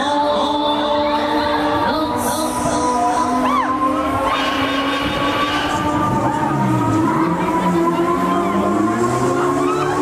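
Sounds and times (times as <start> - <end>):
faint fairground music: 0.0 - 10.0
fairground ride rumbling: 0.0 - 10.0.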